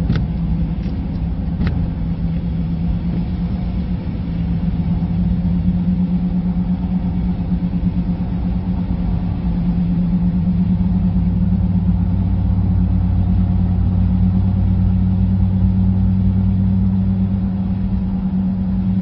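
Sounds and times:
car engine and tyres droning: 0.0s - 19.0s.

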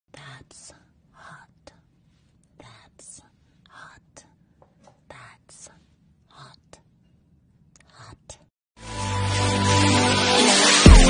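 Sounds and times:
woman whispering: 0.1s - 7.0s, 7.7s - 8.5s.

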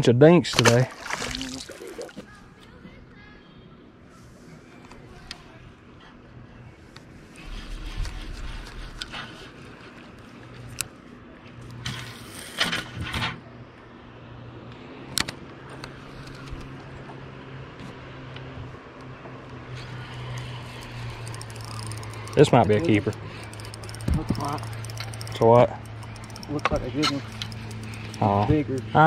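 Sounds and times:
steady low hum: 19.6s - 29.0s
spinning reel clicking: 19.8s - 29.0s.

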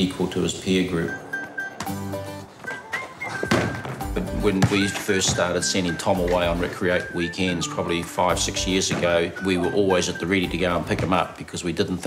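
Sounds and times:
background music: 0.0s - 12.0s
basketball thudding: 3.4s - 6.6s.

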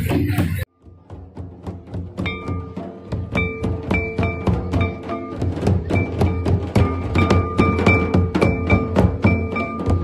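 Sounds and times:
barrel drum beating: 0.0s - 10.0s.

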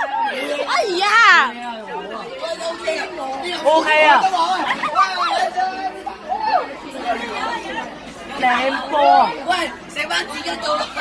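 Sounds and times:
young people shouting and chattering: 0.0s - 11.0s.

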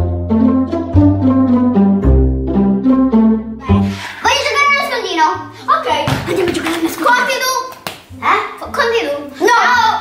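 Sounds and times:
plucked and bowed strings music: 0.0s - 7.0s
children's voices: 3.6s - 10.0s.

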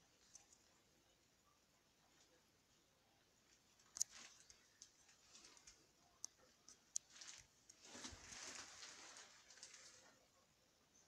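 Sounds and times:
plastic poncho rustling: 3.7s - 6.0s, 7.0s - 10.3s.

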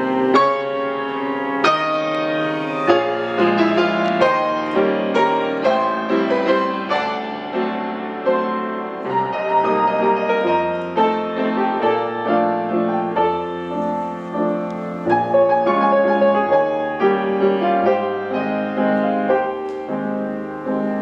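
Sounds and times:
solo piano waltz: 0.0s - 21.0s.

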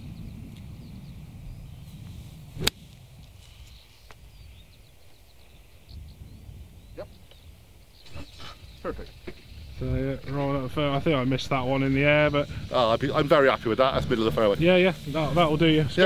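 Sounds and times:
wind rumble on microphone: 0.0s - 16.0s
golf club striking ball: 2.6s - 2.8s.

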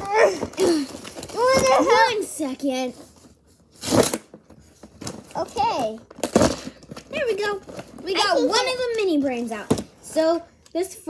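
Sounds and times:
wrapper rustling: 0.0s - 9.6s.

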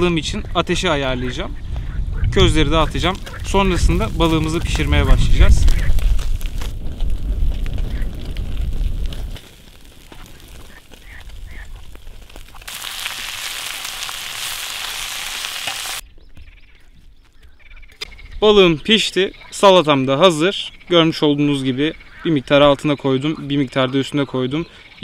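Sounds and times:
low fire rumble: 1.5s - 15.6s
fish sizzling on embers: 2.8s - 16.0s.

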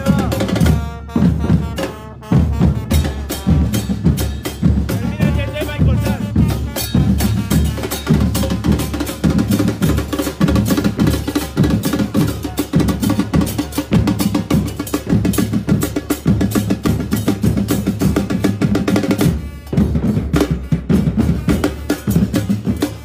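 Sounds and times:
bass drums: 0.0s - 23.0s.

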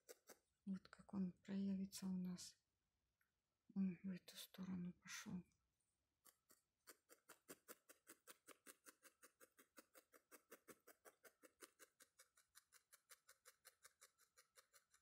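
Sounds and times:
felting needle ticking: 6.3s - 15.0s.

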